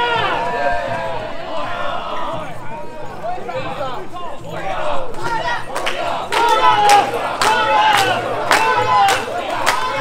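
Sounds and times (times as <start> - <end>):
crowd shouting a chant: 0.0 - 10.0.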